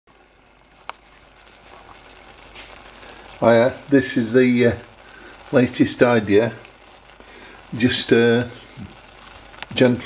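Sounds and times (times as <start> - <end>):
simmering hiss in a pan: 0.1 - 10.0.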